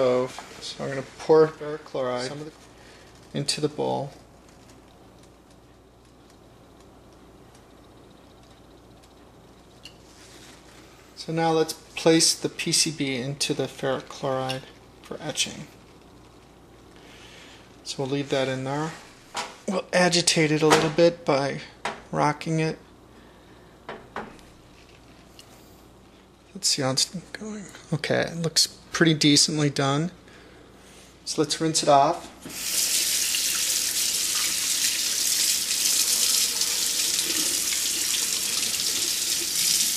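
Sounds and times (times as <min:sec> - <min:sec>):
low steady hum: 0:00.0 - 0:39.9.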